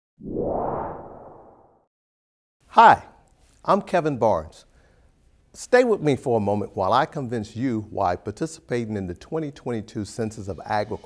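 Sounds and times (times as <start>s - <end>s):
whoosh sound effect: 0.2s - 1.9s.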